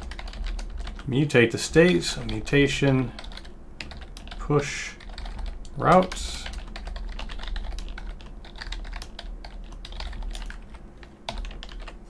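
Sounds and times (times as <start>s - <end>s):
typing on computer keyboard: 0.0s - 1.1s, 3.1s - 12.0s.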